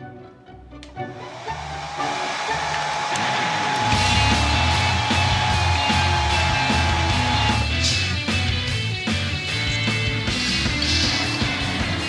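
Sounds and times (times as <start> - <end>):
hair dryer blowing: 1.1 - 7.8
loud music with heavy beat: 2.1 - 12.0.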